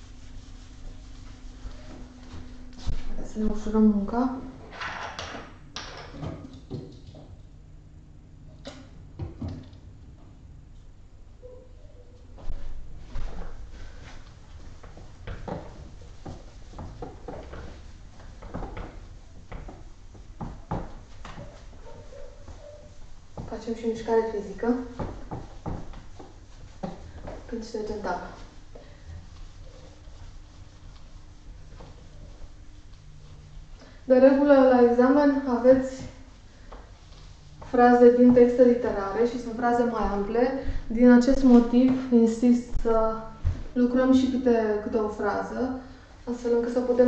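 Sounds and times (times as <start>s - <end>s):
eraser rubbing on whiteboard: 0.0s - 2.0s.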